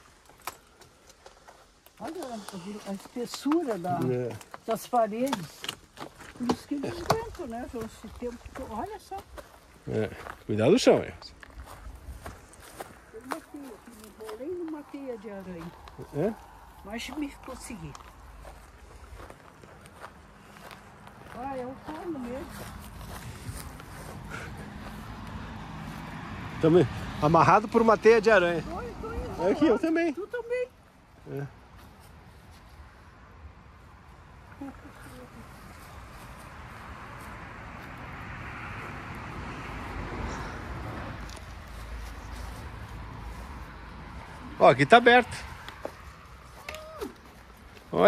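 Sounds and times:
footsteps on grass and ground: 1.4 - 26.2, 31.6 - 33.2, 34.8 - 38.2, 40.4 - 48.0
vehicle passing on highway: 1.4 - 48.0.

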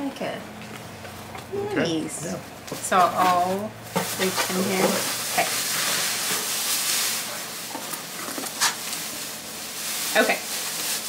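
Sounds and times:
shredded paper rustling: 2.9 - 11.0.

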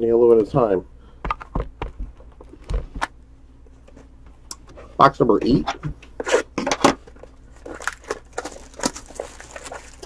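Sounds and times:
plastic wrap tearing and crinkling: 7.5 - 10.0.

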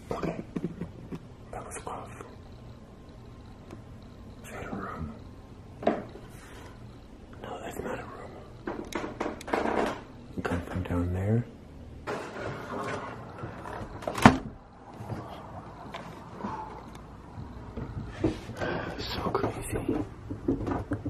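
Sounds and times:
footsteps on wooden stairs: 17.3 - 21.0.

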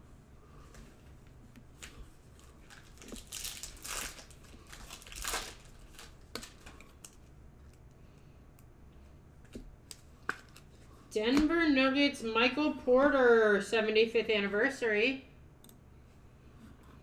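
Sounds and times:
foil wrapper tearing and crinkling: 2.6 - 7.3.

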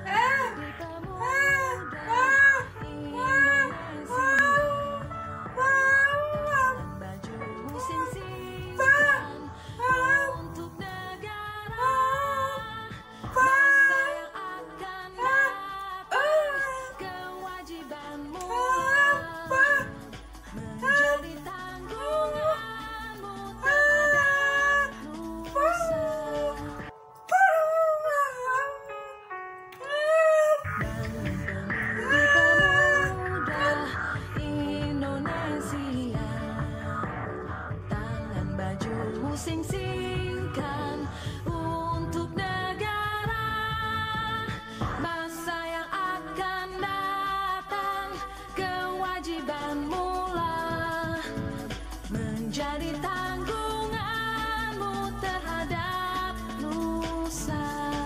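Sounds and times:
high voice singing: 0.0 - 29.1, 29.7 - 58.0
quiet musical accompaniment: 0.0 - 58.0
instrumental backing: 30.6 - 58.0.

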